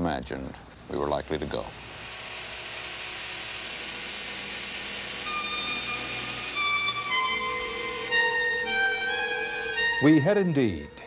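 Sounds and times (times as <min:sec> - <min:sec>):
steady rushing hiss: 0:00.0 - 0:11.0
high sustained violin notes: 0:03.8 - 0:11.0.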